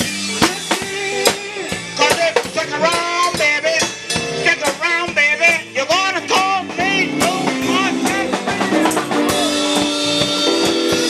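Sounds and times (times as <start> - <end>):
drum kit beat: 0.0 - 11.0
guitar: 0.0 - 11.0
person singing: 0.0 - 11.0.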